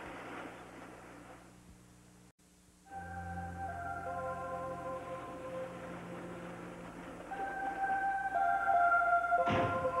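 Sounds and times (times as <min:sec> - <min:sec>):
organ-like held chords: 0:02.8 - 0:10.0.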